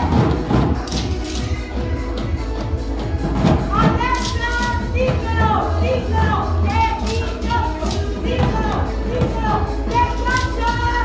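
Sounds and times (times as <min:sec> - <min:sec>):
up-tempo fitness music: 0:00.0 - 0:11.0.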